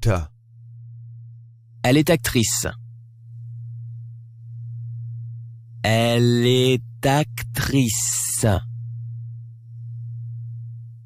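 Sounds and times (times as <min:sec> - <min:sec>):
low pulsing drone tone: 0:00.0 - 0:11.0.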